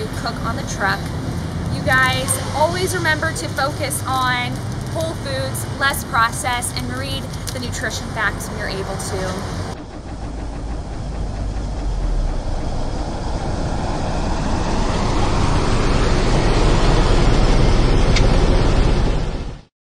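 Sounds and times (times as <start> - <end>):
vehicle engine running: 0.0 - 19.4.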